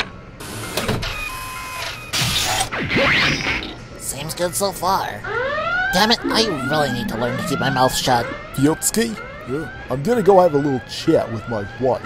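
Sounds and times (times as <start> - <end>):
steady electronic tones: 5.2 - 9.9
sweeping whir: 6.0 - 9.3.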